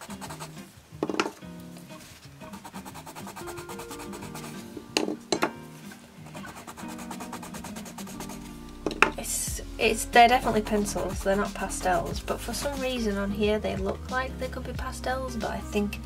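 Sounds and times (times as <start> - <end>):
pencils scratching on paper: 0.0 - 0.6, 2.0 - 4.9, 6.2 - 8.6, 9.9 - 13.6
background music: 0.0 - 16.0
pencils set down on table: 1.0 - 1.4, 5.0 - 5.6, 8.9 - 9.2.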